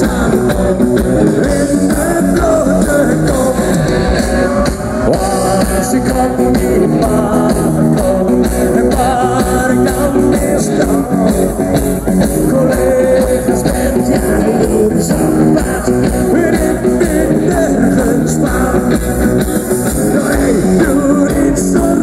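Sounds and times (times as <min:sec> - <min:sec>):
bass guitar: 0:00.0 - 0:22.0
drum kit beat: 0:00.0 - 0:22.0
electric guitars: 0:00.0 - 0:22.0
lead vocal singing: 0:00.0 - 0:22.0.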